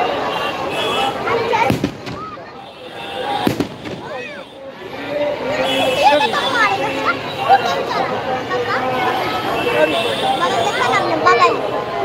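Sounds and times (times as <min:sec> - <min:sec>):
crowd voices and shouts: 0:00.0 - 0:12.0
fireworks bangs: 0:01.6 - 0:04.5.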